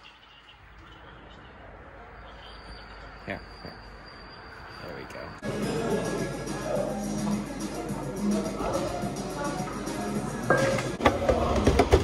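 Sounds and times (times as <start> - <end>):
low street hum and murmur: 0.0 - 12.0.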